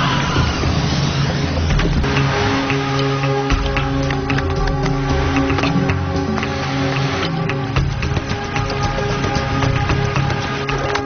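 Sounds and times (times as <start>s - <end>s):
noisy sound effect with low rumble: 0.0s - 9.2s
background music with held notes: 1.3s - 11.0s.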